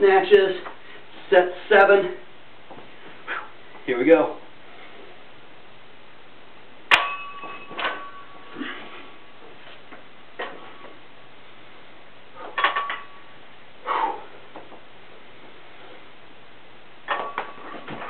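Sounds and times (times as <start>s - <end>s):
barbell plates clanking: 6.9s - 8.6s, 12.4s - 13.3s, 17.1s - 18.0s.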